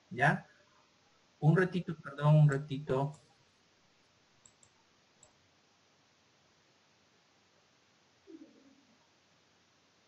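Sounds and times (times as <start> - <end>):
faint short clicks: 4.4 - 5.4.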